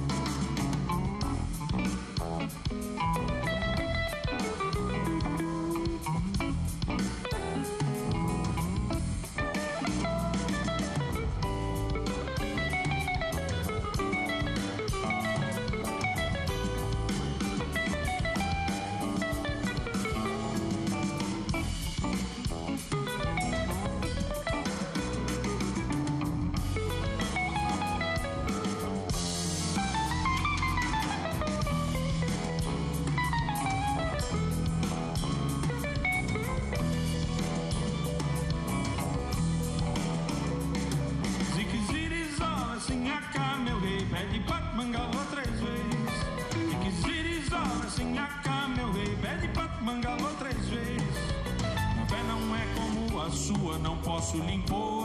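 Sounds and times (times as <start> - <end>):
band with bass and drums: 0.0 - 55.0.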